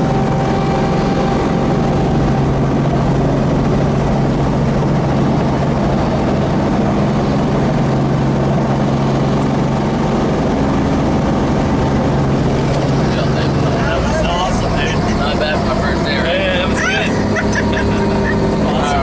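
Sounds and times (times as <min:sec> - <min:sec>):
helicopter engine and rotors drone: 0:00.0 - 0:19.0.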